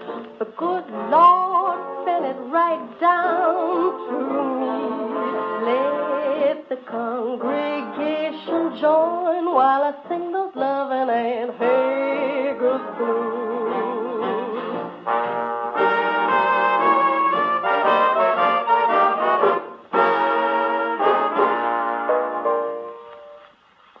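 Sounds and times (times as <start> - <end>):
jazz band with trumpet and trombone: 0.8 - 9.0, 11.5 - 23.4.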